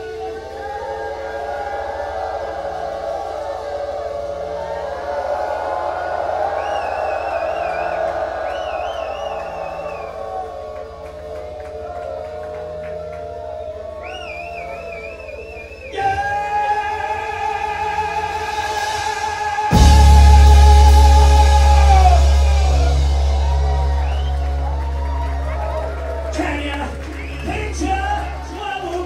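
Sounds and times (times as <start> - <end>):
audience noise: 0.0 - 29.0
low hum from speakers: 19.7 - 29.0.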